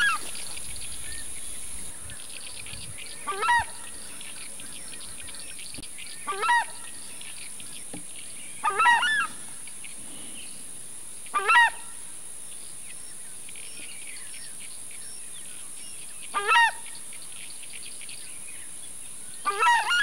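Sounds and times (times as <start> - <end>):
steady high-pitched hiss: 0.0 - 20.0
large bird honking: 3.0 - 5.6, 6.2 - 7.2, 8.6 - 9.5, 11.3 - 12.0, 16.4 - 16.8, 19.5 - 20.0.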